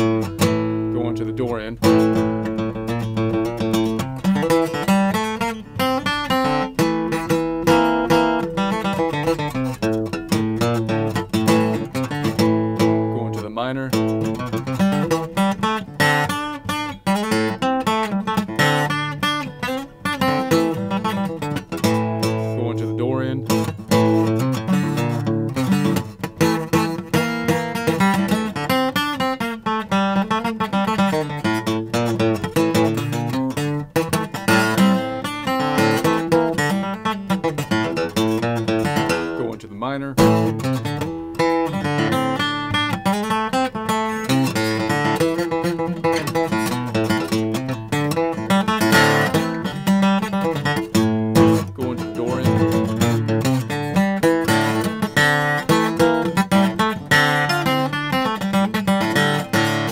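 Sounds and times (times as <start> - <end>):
acoustic guitar picking: 0.0 - 59.9.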